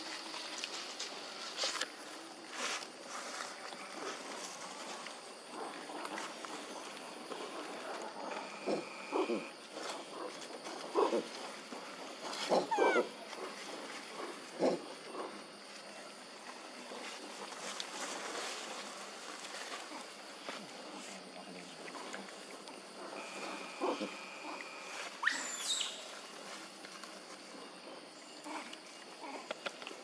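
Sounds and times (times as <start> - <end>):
macaque rough calls: 8.2 - 9.5, 12.4 - 13.2, 23.2 - 26.0
macaque squeal sliding down: 25.2 - 26.0.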